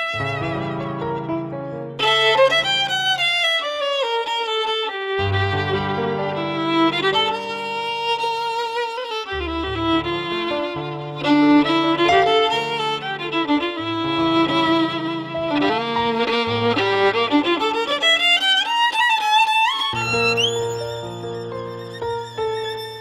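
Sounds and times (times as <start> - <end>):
violin improvising ornamented melody: 0.0 - 23.0.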